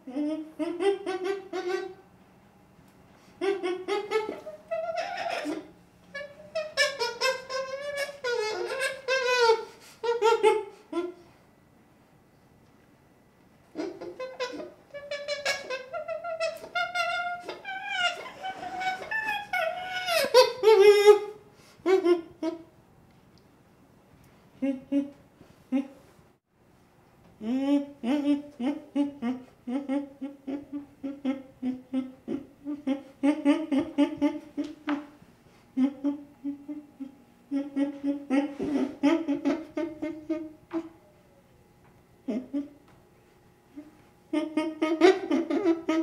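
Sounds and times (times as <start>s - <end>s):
baby chimpanzee crying: 0.0s - 2.0s, 3.4s - 11.2s, 13.7s - 22.6s, 35.8s - 41.0s, 42.3s - 42.8s, 44.3s - 46.0s.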